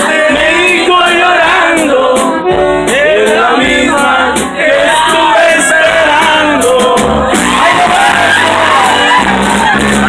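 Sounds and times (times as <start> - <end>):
live band playing dance tune: 0.0 - 10.0
steady drum beat: 0.0 - 10.0.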